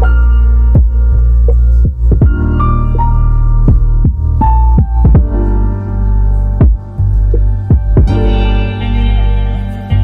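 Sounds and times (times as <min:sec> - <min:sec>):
deep sustained bass: 0:00.0 - 0:10.0
kick drum hits: 0:00.8 - 0:01.0, 0:01.8 - 0:02.5, 0:03.7 - 0:05.4, 0:06.6 - 0:08.2.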